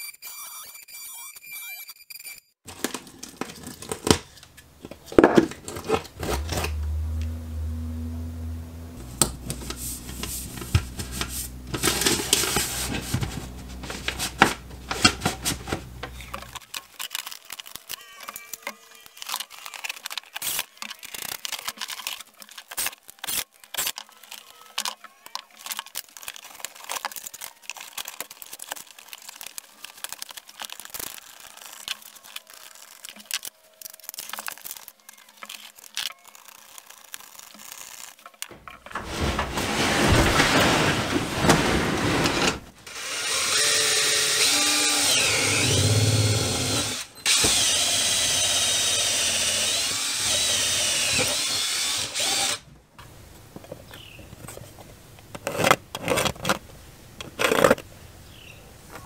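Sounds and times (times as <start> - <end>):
power drill running: 42.4 - 52.6.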